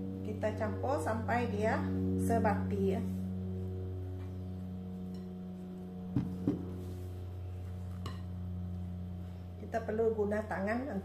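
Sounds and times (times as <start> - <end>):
low steady hum: 0.0 - 11.0
dull knocks: 6.2 - 6.7.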